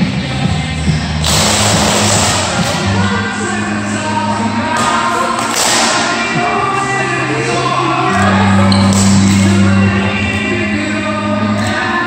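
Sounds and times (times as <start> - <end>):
music with singing: 0.0 - 12.0.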